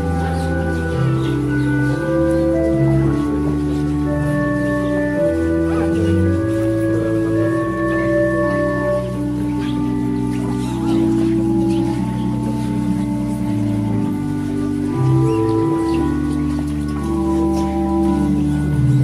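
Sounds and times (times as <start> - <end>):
organ playing slow chords: 0.0 - 19.0.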